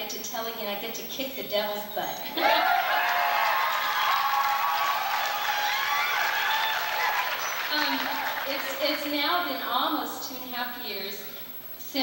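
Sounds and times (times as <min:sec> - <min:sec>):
audience cheering: 0:02.4 - 0:09.2
audience clapping: 0:02.4 - 0:09.2.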